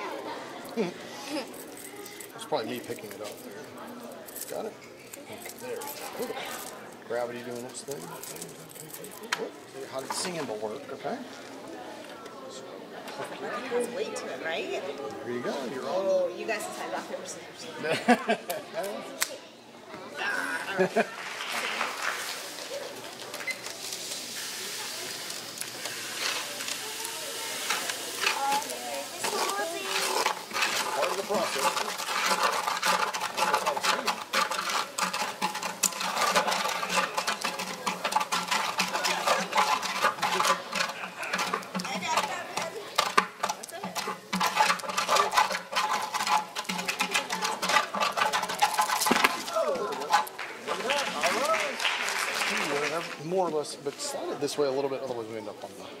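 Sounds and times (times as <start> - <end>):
indistinct chatter of people: 0.0 - 56.0.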